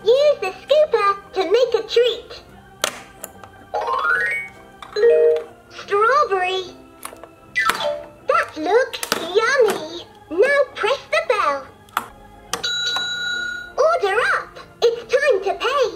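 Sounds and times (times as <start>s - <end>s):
toy sing-song recorded voice: 0.0s - 2.6s, 8.3s - 11.7s
toy backing tune: 3.2s - 5.5s, 10.8s - 13.9s.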